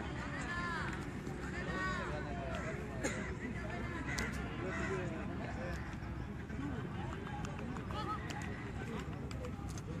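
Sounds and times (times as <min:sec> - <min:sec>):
distant indistinct voices: 0:00.0 - 0:10.0
outdoor background noise: 0:00.0 - 0:10.0.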